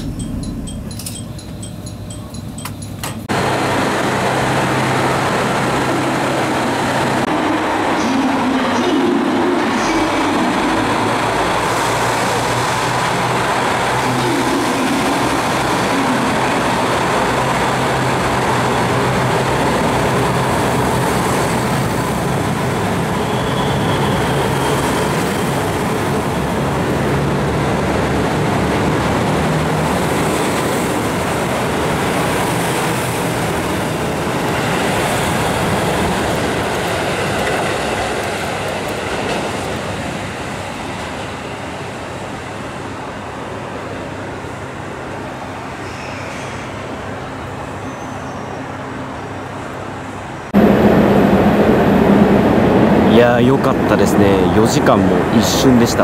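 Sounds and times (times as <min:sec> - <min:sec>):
diesel train engines running: 0:00.0 - 0:56.0
train wheels rumbling on rail: 0:00.0 - 0:56.0.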